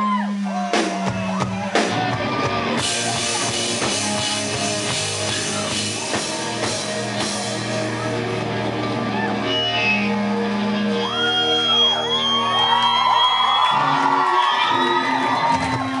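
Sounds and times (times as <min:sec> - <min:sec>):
crowd whooping and shouting: 0:00.0 - 0:16.0
rock band ringing chords: 0:00.0 - 0:16.0.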